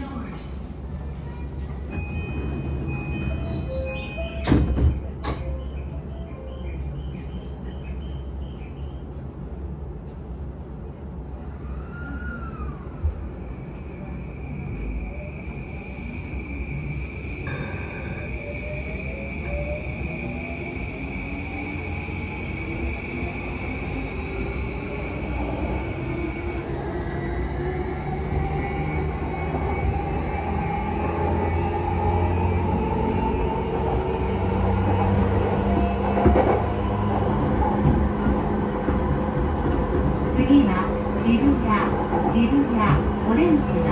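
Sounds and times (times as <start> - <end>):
train running noise: 0.0 - 43.9
steady high tone: 16.6 - 23.4.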